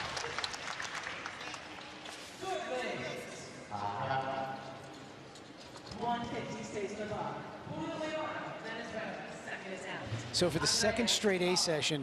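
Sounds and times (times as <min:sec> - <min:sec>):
audience applauding: 0:00.0 - 0:02.1.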